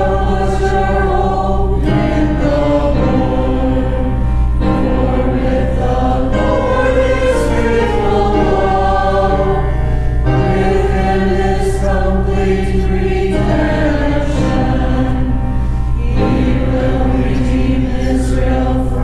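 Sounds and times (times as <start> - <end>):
choir singing sustained chords: 0.0 - 19.0
steady low drone: 0.0 - 19.0.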